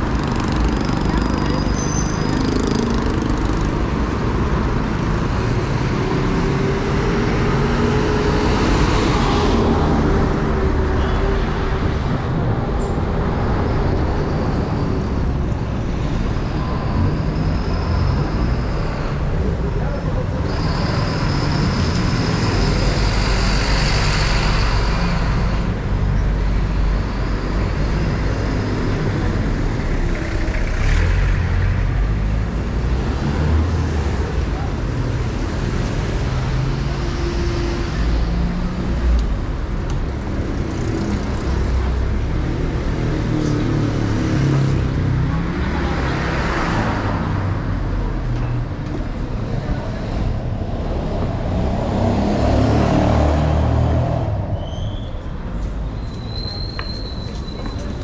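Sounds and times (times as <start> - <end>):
vehicles passing close by: 0.0 - 58.0.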